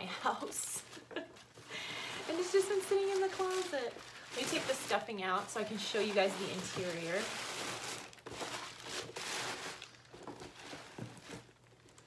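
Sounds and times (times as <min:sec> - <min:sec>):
packing stuffing rustling: 0:00.2 - 0:12.0
bag rustling: 0:00.4 - 0:12.0.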